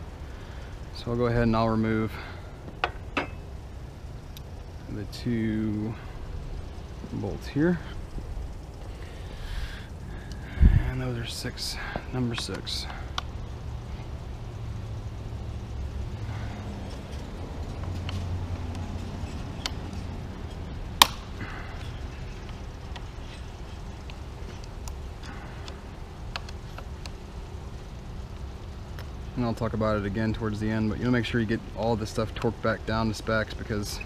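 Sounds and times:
low background hum: 0.0s - 34.0s.

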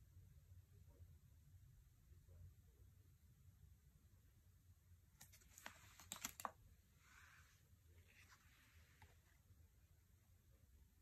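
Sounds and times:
cards clicking and tapping: 5.2s - 6.6s
cards sliding swishes: 5.2s - 9.3s.

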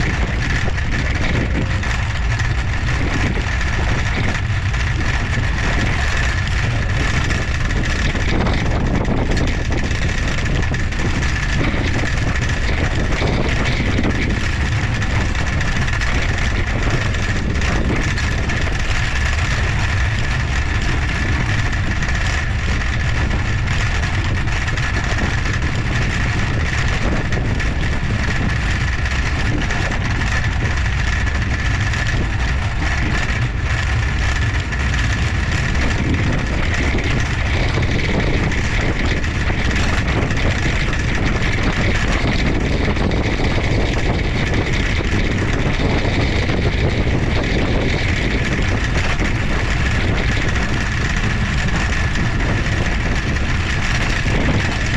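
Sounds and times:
trike wheels rolling on pavement: 0.0s - 54.9s
wind noise: 0.0s - 54.9s.

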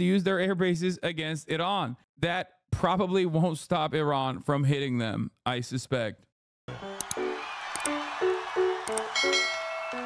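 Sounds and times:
bright bell-like chime: 9.1s - 10.0s.

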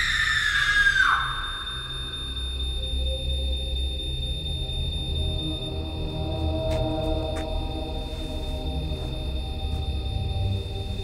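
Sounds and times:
high piercing held tone: 0.0s - 6.2s
low eerie droning score: 0.0s - 11.0s.

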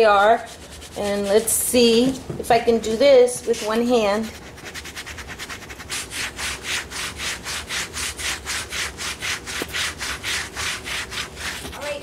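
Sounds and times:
scrubbing handlebar tape: 3.4s - 12.0s.

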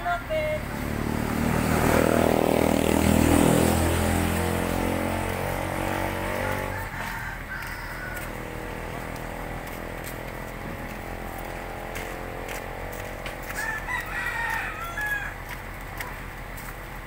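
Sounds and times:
vehicle engine passing by: 0.0s - 17.0s.

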